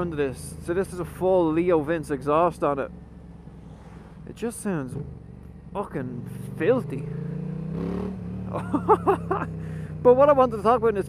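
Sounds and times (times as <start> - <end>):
motorcycle engine revving: 4.7 - 11.0.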